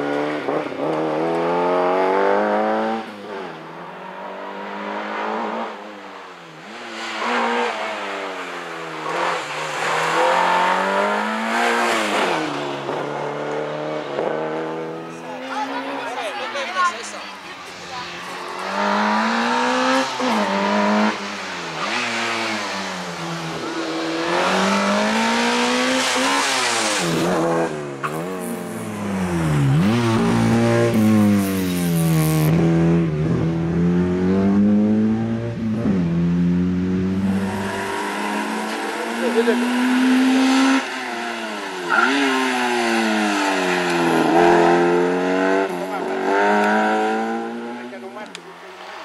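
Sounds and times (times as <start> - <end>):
car engine revving: 0.0 - 16.2, 17.2 - 49.0.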